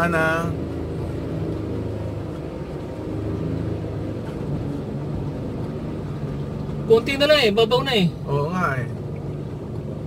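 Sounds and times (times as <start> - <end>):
car engine low drone: 0.0 - 10.0.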